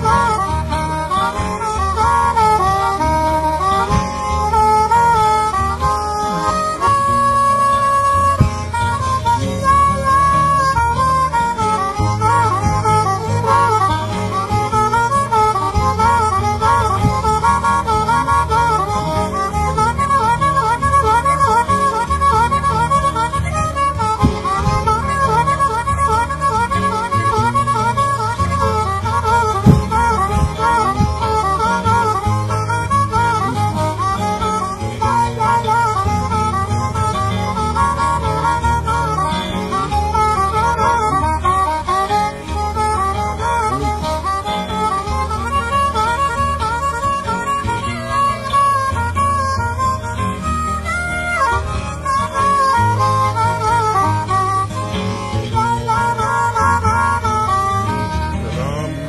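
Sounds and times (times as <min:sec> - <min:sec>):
acoustic guitar bass line: 0:00.0 - 0:59.0
harmonica solo with bending notes: 0:00.0 - 0:59.0.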